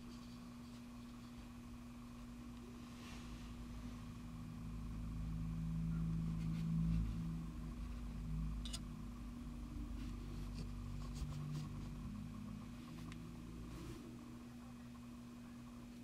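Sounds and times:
low steady hum: 0:00.0 - 0:16.0.

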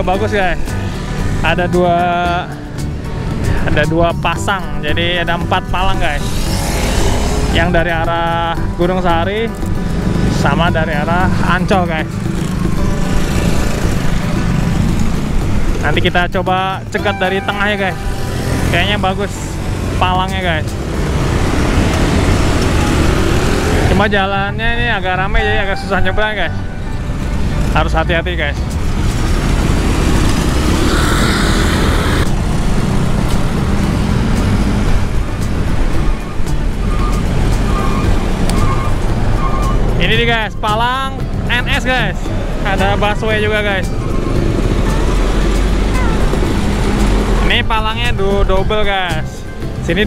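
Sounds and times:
scooters and cars passing: 0:00.0 - 0:50.0
bus engine driving away: 0:05.0 - 0:50.0.

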